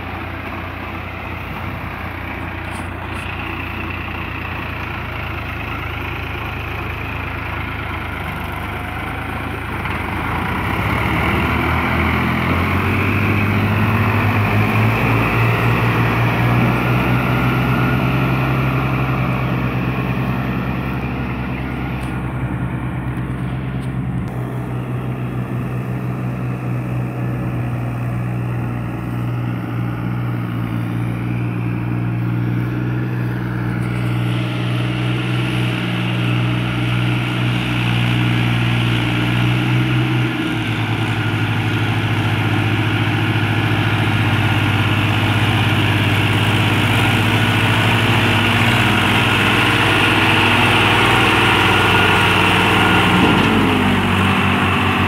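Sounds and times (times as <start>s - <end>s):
diesel tractor engines under load: 0.0s - 55.0s.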